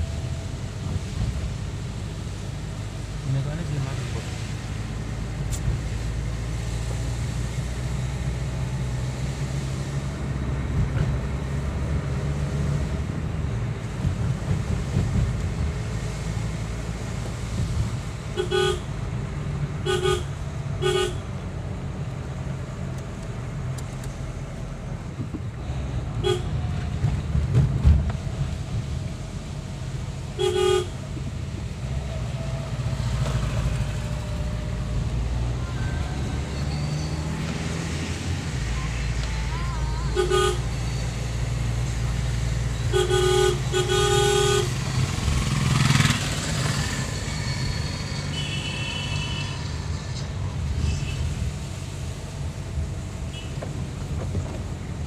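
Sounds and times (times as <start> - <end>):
car engine and tyres rumbling: 0.0 - 55.0
car horn beeping: 18.4 - 18.9, 19.8 - 21.3, 26.2 - 26.6, 30.4 - 31.0, 39.8 - 41.0, 42.8 - 44.8, 48.3 - 49.7.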